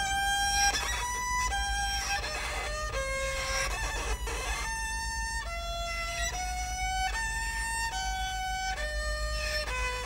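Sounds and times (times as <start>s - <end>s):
fiddle music: 0.0s - 10.0s.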